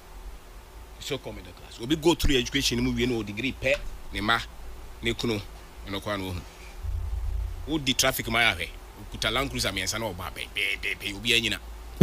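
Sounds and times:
low buzz: 1.9s - 10.2s
man speaking: 7.6s - 11.6s.

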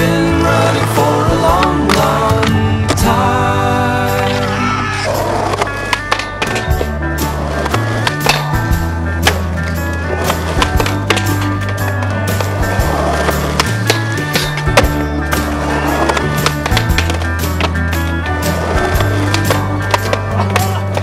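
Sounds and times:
music with bass line: 0.0s - 21.0s
skateboard wheels rolling on pavement: 4.1s - 21.0s
skateboard knocking: 5.4s - 21.0s.

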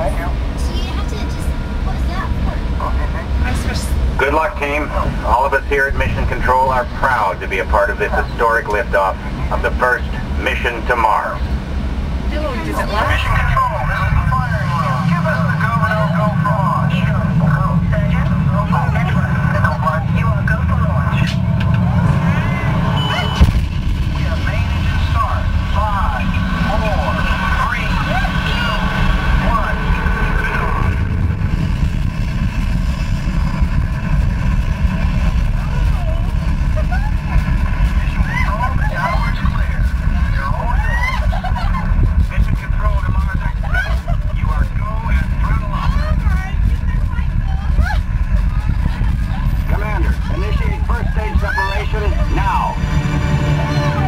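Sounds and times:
simulated rocket launch rumble: 0.0s - 54.0s
riders' voices: 1.9s - 11.5s, 34.8s - 52.9s.

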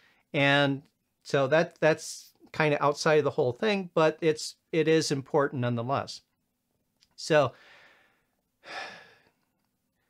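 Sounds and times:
man breathing: 7.6s - 10.0s.

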